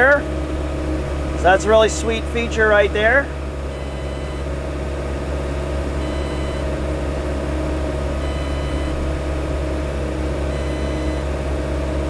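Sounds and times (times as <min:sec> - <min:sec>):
hydraulics working: 0:00.0 - 0:11.4
excavator diesel engine running: 0:00.0 - 0:12.0
faint high beep: 0:03.7 - 0:04.4, 0:06.0 - 0:06.7, 0:08.2 - 0:09.0, 0:10.5 - 0:11.3.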